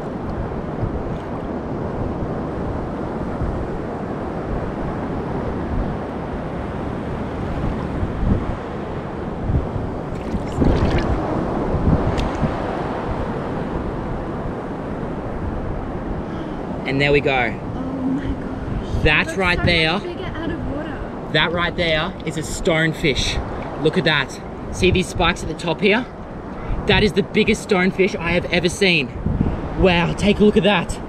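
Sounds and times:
wind buffeting microphone: 0.0 - 22.2, 28.2 - 31.0
ocean surf: 0.0 - 31.0.

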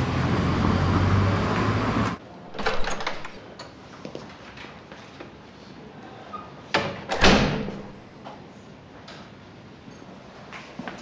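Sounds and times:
door banging shut: 2.5 - 3.3, 6.8 - 8.0.

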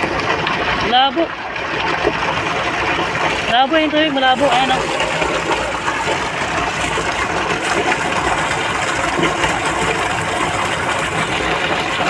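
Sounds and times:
water gushing from a pipe: 0.0 - 12.0.

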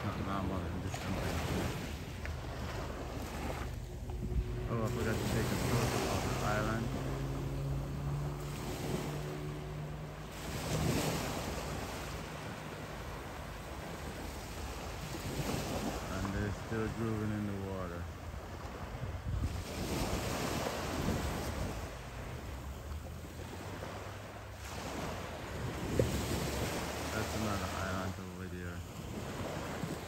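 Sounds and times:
wind buffeting microphone: 0.0 - 12.4, 18.5 - 23.1
steady low drone: 0.0 - 15.2
distant voices: 0.0 - 19.0
surf washing on sandy beach: 0.0 - 30.0.

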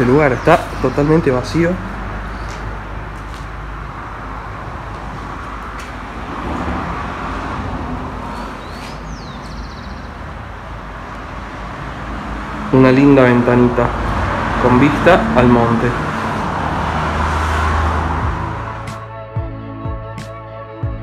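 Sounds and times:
bird chirping: 0.0 - 2.7, 8.2 - 10.4.

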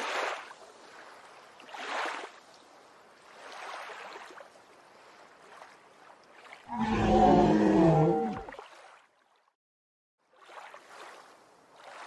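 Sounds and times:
dinosaur roar: 6.7 - 8.5.

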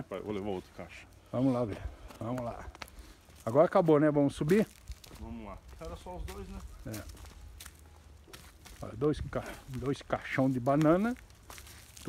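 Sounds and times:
footsteps on dry dirt: 0.0 - 12.0
person speaking: 8.8 - 11.3.

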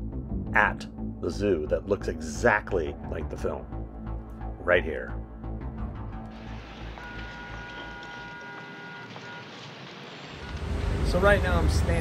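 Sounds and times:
background music with held notes: 0.0 - 8.2.

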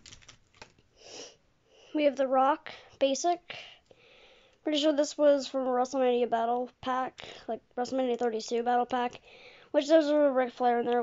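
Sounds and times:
breath close to microphone: 0.9 - 2.0, 2.7 - 4.6, 7.2 - 7.5, 9.2 - 9.7.

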